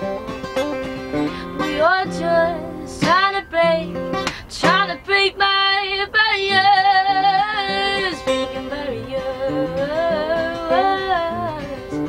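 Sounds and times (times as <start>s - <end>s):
acoustic guitar: 0.0s - 12.0s
woman singing: 1.4s - 12.0s.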